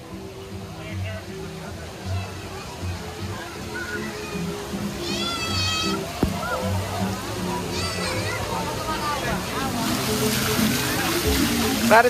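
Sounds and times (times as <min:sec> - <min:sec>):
background music: 0:00.0 - 0:12.0
crowd of voices: 0:00.0 - 0:12.0
running and splashing water: 0:00.1 - 0:12.0.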